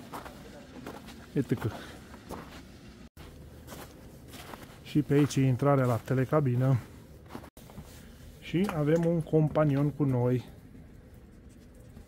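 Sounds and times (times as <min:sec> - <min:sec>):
faint footsteps: 0:00.0 - 0:10.2.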